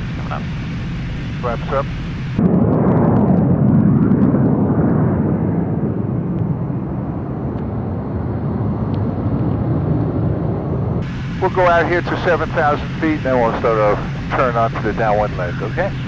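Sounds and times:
jet engine rushing: 0:00.0 - 0:16.0.

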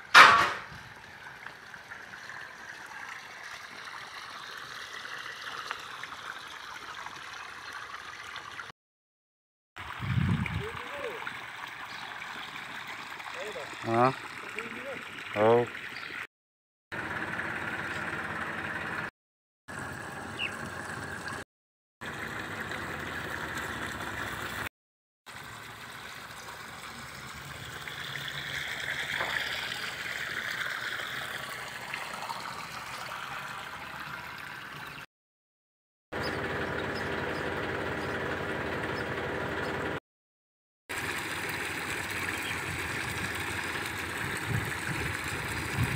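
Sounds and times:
water running from a hose: 0:00.0 - 0:08.7, 0:09.8 - 0:16.3, 0:19.7 - 0:21.4, 0:22.0 - 0:24.7, 0:25.3 - 0:35.1, 0:40.9 - 0:45.9
steady motor hum: 0:36.2 - 0:40.0, 0:41.0 - 0:45.9.

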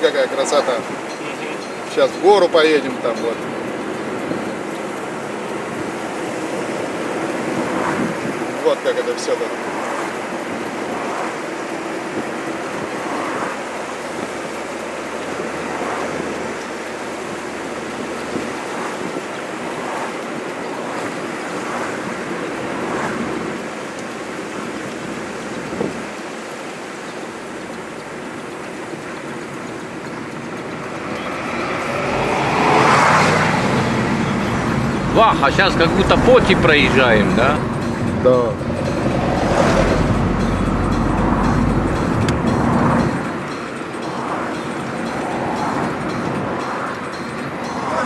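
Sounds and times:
passing traffic: 0:00.0 - 0:48.0
wind rush: 0:03.4 - 0:48.0.

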